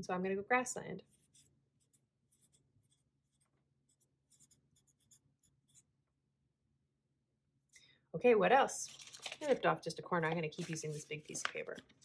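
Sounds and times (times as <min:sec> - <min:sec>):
marker scratching on paper: 0:01.0 - 0:06.0.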